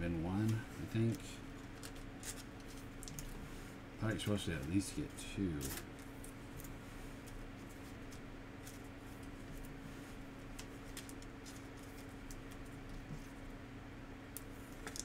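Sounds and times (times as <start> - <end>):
steady low hum: 0.0 - 15.0
cards clicking and rustling: 0.4 - 3.3, 5.5 - 5.9, 10.5 - 13.3.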